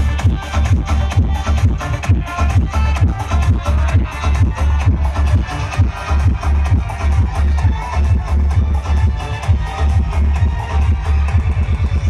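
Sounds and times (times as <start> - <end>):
electronic dance music with heavy bass: 0.0 - 12.0.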